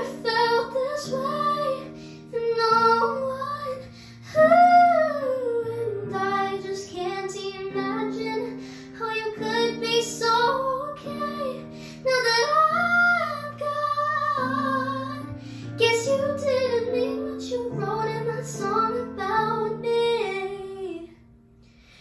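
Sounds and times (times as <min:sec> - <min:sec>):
girl singing: 0:00.0 - 0:21.3.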